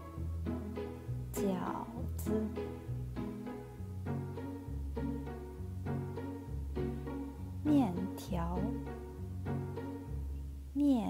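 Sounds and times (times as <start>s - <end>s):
steady bass line: 0.0s - 10.7s.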